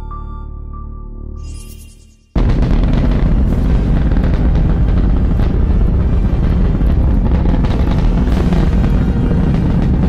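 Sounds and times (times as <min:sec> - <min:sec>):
dramatic soundtrack music: 0:02.3 - 0:10.0
rocket launch rumble: 0:02.4 - 0:10.0.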